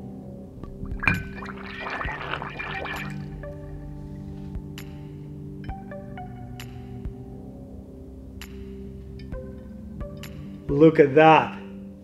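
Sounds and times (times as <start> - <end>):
air bubbling through water: 0.6 - 3.7.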